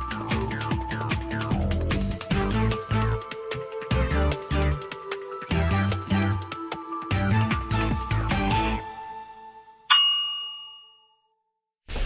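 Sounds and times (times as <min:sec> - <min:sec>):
background music: 0:00.0 - 0:10.0
bell-like ding: 0:09.9 - 0:11.5.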